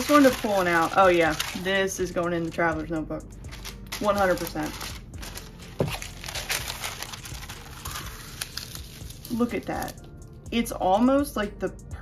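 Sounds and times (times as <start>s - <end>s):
paper rustling and crinkling: 0.0s - 1.8s, 3.5s - 10.0s.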